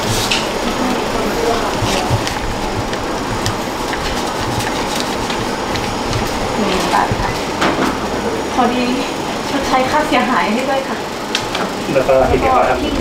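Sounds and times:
banknotes rustling and flicking: 0:00.0 - 0:08.0
loud background noise: 0:00.0 - 0:13.0
person speaking: 0:00.6 - 0:07.6.

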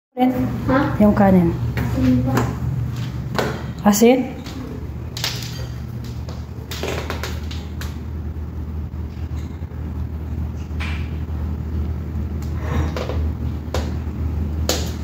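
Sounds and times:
steady low hum: 0:00.2 - 0:15.0.

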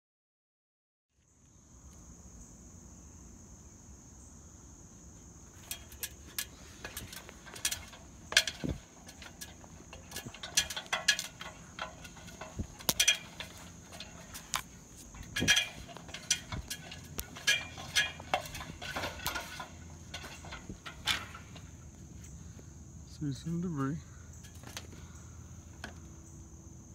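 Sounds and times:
clanks on metal ladder rungs: 0:05.5 - 0:22.0, 0:23.2 - 0:25.1.

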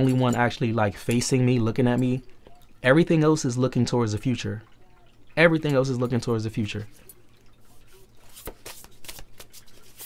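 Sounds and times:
cards clicking and tapping: 0:08.2 - 0:10.0.

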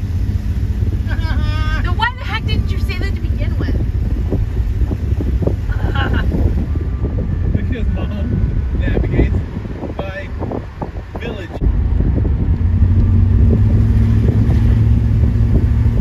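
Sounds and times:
vehicle engine and road noise: 0:00.0 - 0:16.0
wind buffeting: 0:00.0 - 0:16.0.

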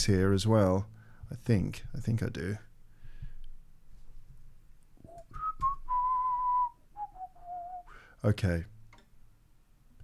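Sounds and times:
man whistling: 0:05.0 - 0:08.1.

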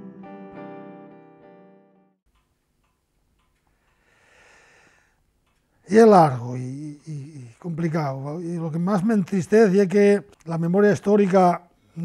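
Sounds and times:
soft ticks: 0:02.3 - 0:04.1, 0:05.2 - 0:05.8.

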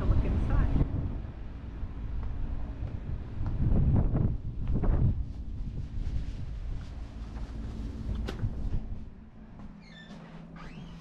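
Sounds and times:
wind buffeting microphone: 0:00.0 - 0:09.3.

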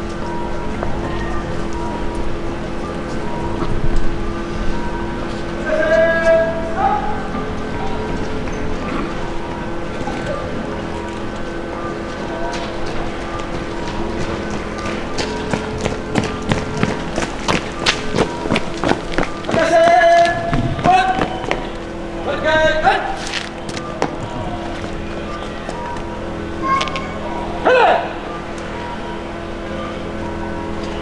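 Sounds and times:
background music held tones: 0:00.0 - 0:31.0
shouted commands: 0:05.6 - 0:07.4, 0:19.5 - 0:21.6, 0:26.6 - 0:28.2
boots marching on pavement: 0:12.1 - 0:21.8, 0:23.2 - 0:26.1.

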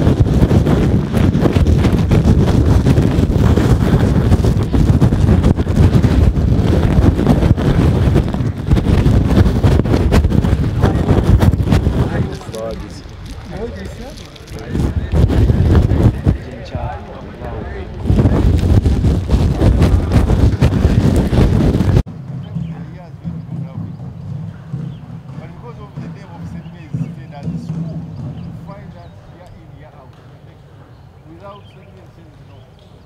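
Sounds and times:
wind rumble on microphone: 0:00.0 - 0:33.0
men talking: 0:10.7 - 0:18.5, 0:22.4 - 0:24.2, 0:25.3 - 0:32.9.

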